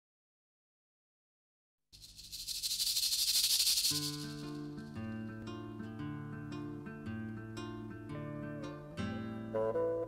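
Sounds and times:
high rattling hiss: 2.0s - 5.0s
acoustic guitar music: 4.0s - 10.0s.

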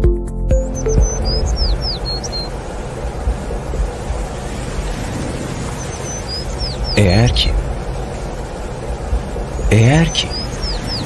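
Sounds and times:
steady rushing background: 0.5s - 11.0s
small bird whistling: 0.7s - 2.5s, 5.7s - 7.0s, 9.6s - 11.0s.

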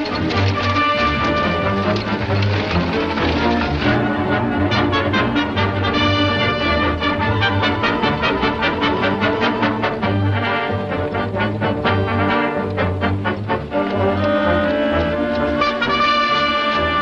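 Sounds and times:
brass-led orchestral chase music: 0.0s - 17.0s.

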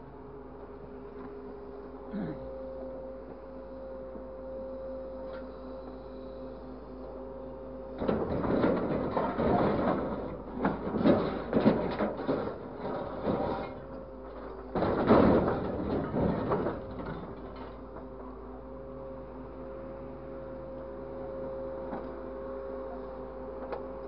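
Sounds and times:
scrap metal clattering and scraping: 8.0s - 17.8s.

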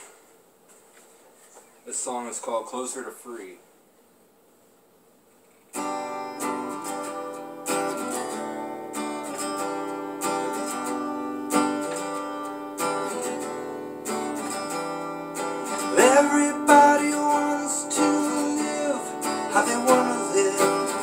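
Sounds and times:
acoustic guitar strumming: 5.7s - 21.0s.

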